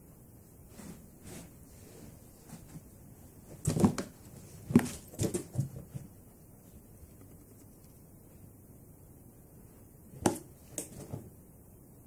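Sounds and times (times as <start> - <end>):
cat scrambling in cardboard box: 3.6 - 6.1.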